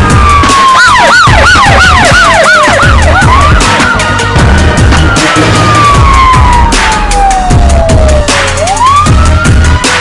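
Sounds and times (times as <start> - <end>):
music with steady drum beat: 0.0 - 10.0
siren falling wail: 0.0 - 10.0
siren rapid yelp: 0.0 - 10.0.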